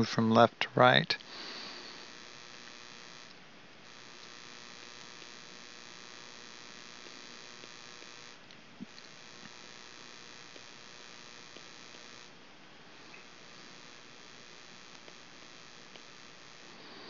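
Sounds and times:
electrical hum and hiss: 0.0 - 17.0
thin high whine: 0.0 - 17.0.

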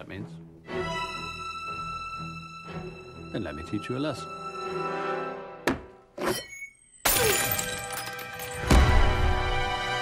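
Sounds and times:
film score music: 0.0 - 6.3, 8.3 - 10.0
glass mug shattering: 6.3 - 8.9.

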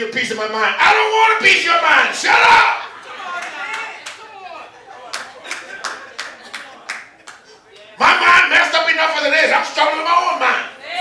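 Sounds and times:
hand clapping: 5.1 - 7.9.

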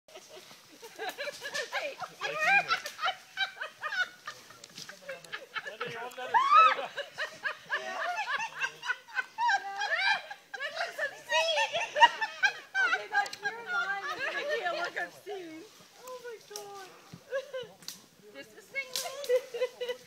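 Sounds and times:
women chattering and laughing: 0.1 - 20.0.

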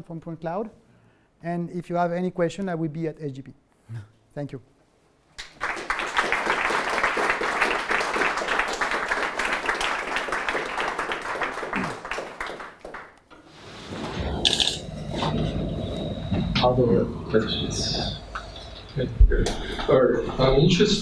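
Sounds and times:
audience clapping: 5.4 - 13.3.

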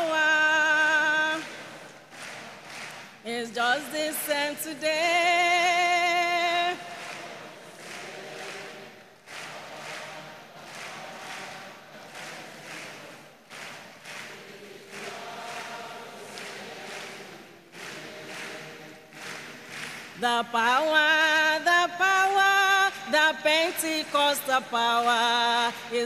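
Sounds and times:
congregation singing gospel chorus: 0.0 - 26.0.

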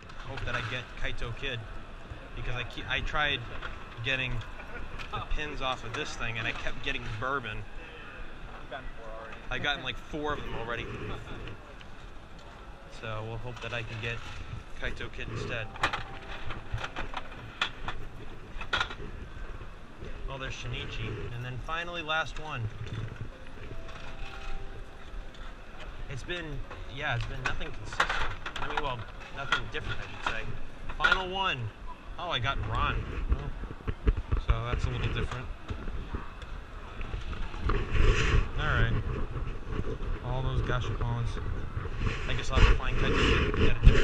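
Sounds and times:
crowd hubbub: 0.0 - 44.0
steady low hum: 0.0 - 44.0.

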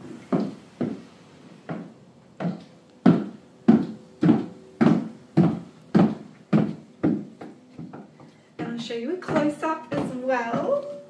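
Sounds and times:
high heels on hardwood floor: 0.0 - 1.0, 1.7 - 11.0.

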